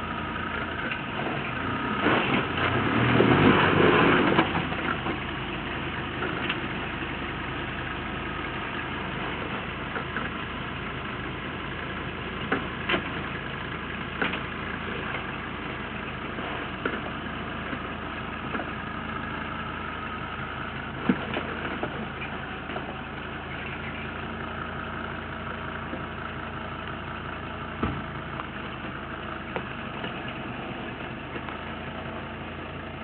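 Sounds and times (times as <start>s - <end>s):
diesel engine running at low revs: 0.0s - 33.0s
sharp clicks and knocks: 14.2s - 14.5s.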